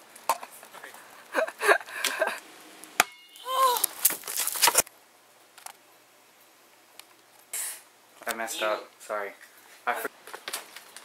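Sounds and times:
person laughing: 0:01.3 - 0:02.4.

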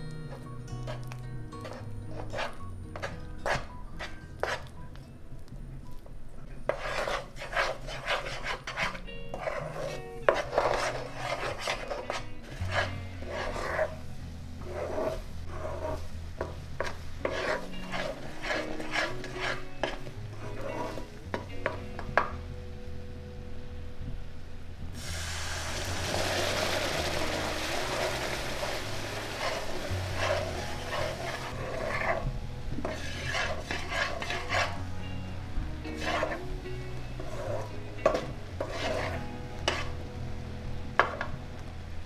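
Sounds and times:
metal spoon scraping a pan: 0:00.3 - 0:04.7, 0:06.7 - 0:14.0, 0:14.6 - 0:22.3, 0:26.0 - 0:34.8, 0:35.9 - 0:40.0, 0:41.0 - 0:41.3
sugar syrup sizzling in a pan: 0:25.0 - 0:34.8, 0:35.9 - 0:40.0.

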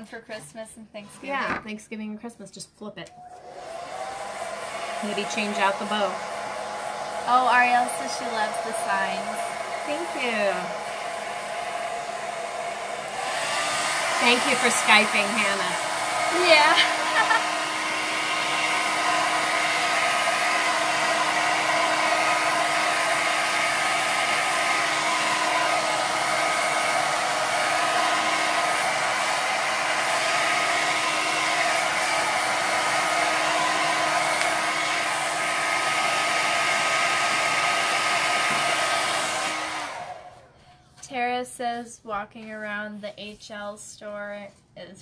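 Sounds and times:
hair dryer whirring: 0:01.0 - 0:01.9, 0:03.0 - 0:40.6.

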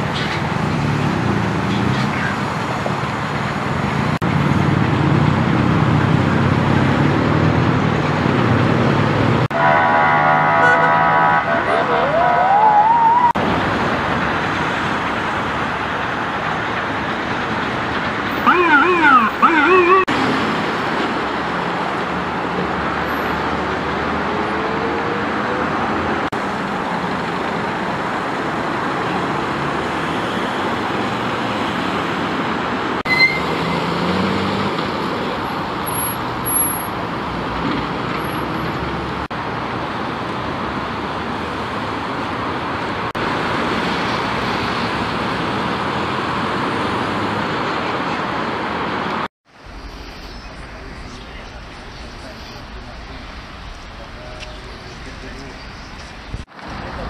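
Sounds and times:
road traffic: 0:00.0 - 0:57.0
vehicle horn blaring: 0:09.5 - 0:12.6, 0:18.4 - 0:20.1
emergency vehicle siren: 0:09.5 - 0:13.4, 0:18.3 - 0:20.2.

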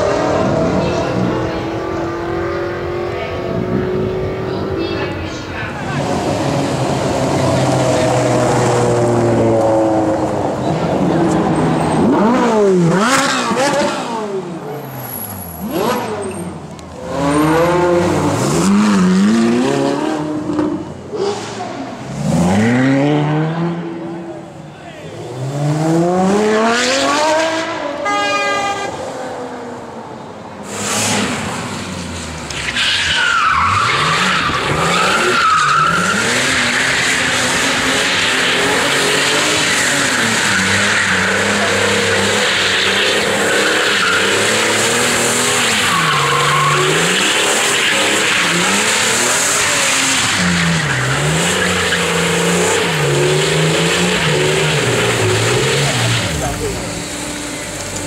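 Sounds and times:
car engine revving high: 0:05.8 - 0:24.2, 0:25.2 - 0:29.0, 0:33.4 - 0:58.0.

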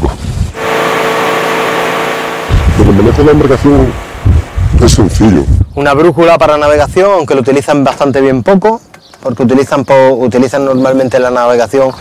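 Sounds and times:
motorboat engine drone: 0:00.4 - 0:05.3.

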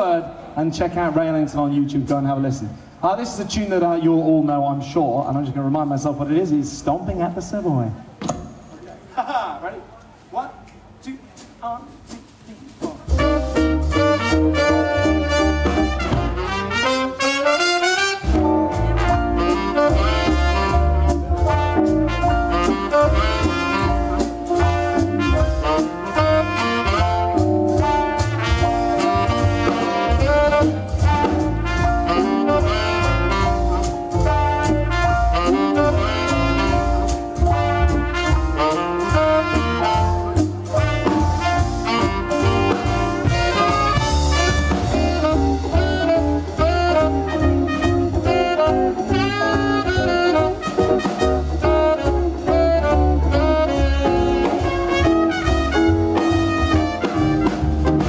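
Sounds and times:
swing band playing: 0:00.0 - 0:58.0.

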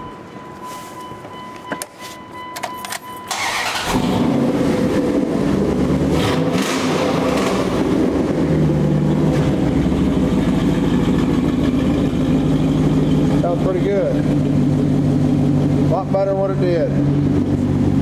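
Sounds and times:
steady beep: 0:00.0 - 0:03.4
pickup engine starting and idling: 0:03.2 - 0:18.0.

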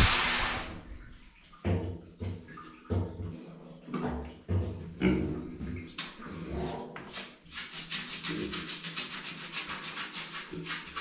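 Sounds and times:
bristle brush scrubbing: 0:07.1 - 0:11.0.

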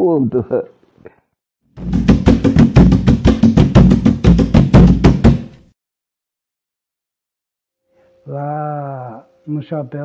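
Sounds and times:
hand drum strikes: 0:01.8 - 0:05.5.

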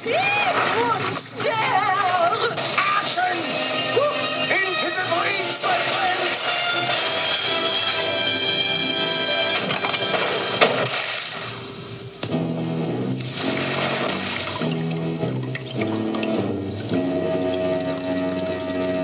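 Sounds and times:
cartoon music: 0:00.2 - 0:10.7
water splashing and dripping: 0:09.6 - 0:11.8, 0:13.1 - 0:19.0.

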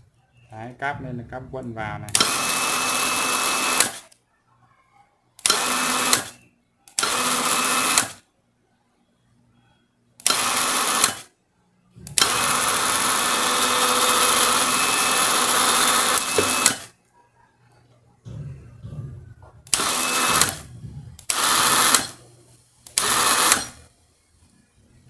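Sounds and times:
electric winch motor running: 0:02.2 - 0:04.0, 0:05.4 - 0:06.3, 0:07.0 - 0:08.2, 0:10.2 - 0:11.2, 0:12.2 - 0:16.9, 0:19.7 - 0:22.2, 0:22.9 - 0:23.9.

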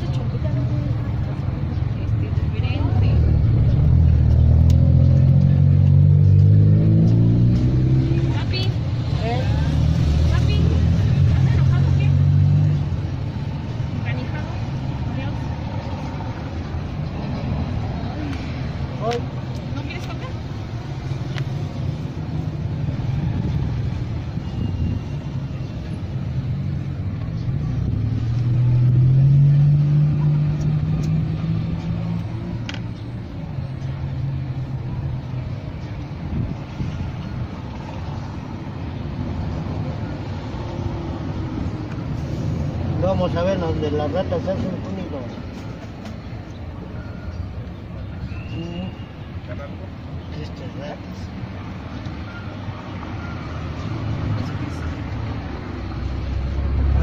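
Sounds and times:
vehicle engine accelerating past: 0:02.9 - 0:13.0, 0:27.3 - 0:32.6, 0:55.4 - 0:57.0.

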